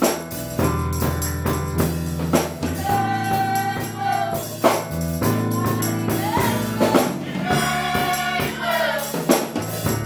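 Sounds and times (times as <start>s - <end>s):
drum kit: 0.0s - 10.0s
electric keyboard: 0.0s - 10.0s
jingling tambourine: 0.0s - 10.0s
gospel choir singing: 2.6s - 10.0s.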